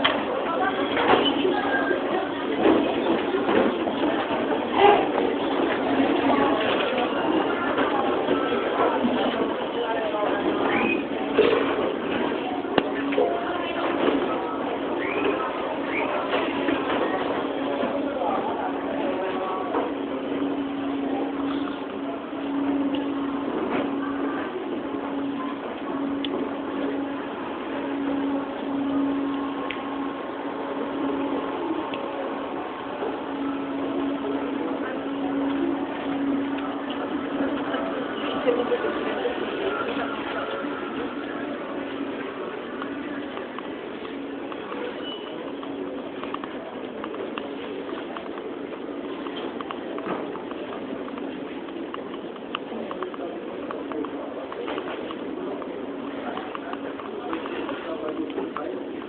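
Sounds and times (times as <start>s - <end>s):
murmur of voices: 0.0s - 59.0s
steady low hum: 0.0s - 59.0s.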